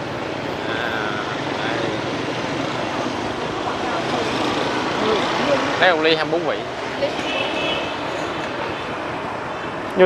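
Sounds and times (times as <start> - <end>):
motorbike traffic rumble: 0.0 - 10.0.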